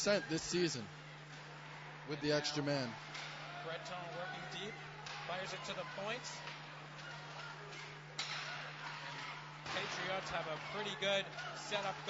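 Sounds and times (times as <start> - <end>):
rink and crowd noise: 0.0 - 12.0.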